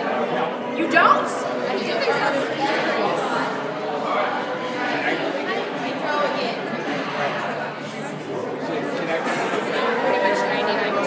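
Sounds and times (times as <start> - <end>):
crowd chatter indoors: 0.0 - 11.0.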